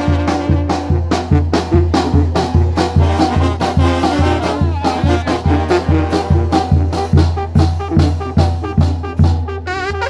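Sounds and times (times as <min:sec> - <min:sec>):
bass drum: 0:00.0 - 0:09.6
trumpets and saxophone: 0:00.0 - 0:10.0.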